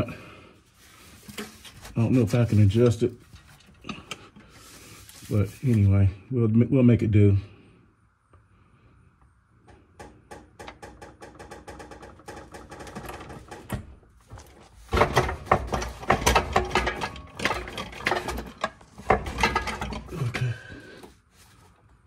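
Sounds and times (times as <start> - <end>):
metal knocks: 14.9 - 20.4.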